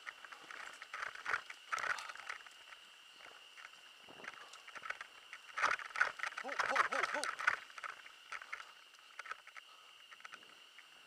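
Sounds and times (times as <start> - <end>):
mountain bike clattering over rocks: 0.0 - 10.5.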